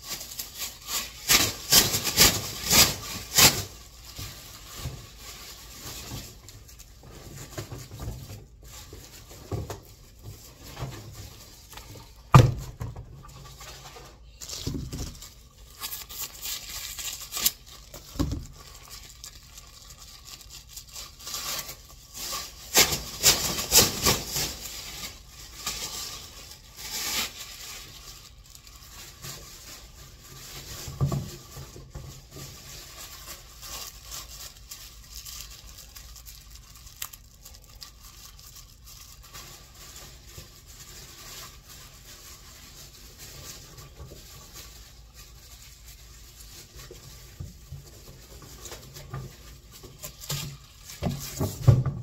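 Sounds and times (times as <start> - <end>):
plastic trash bags rustling: 0.0 - 52.0.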